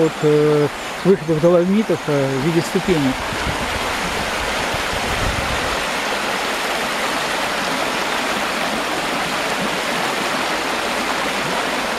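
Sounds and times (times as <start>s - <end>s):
river rapids rushing: 0.0s - 11.9s.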